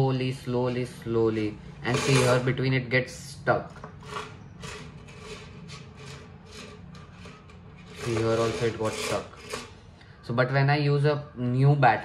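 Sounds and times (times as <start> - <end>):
rasping scrapes from wire coil: 1.8 - 2.6, 3.8 - 10.0.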